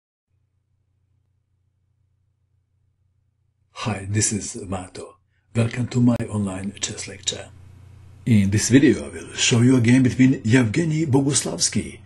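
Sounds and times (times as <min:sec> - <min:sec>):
faint low room hum: 0:00.5 - 0:12.0
man speaking: 0:03.8 - 0:07.6, 0:08.2 - 0:12.0.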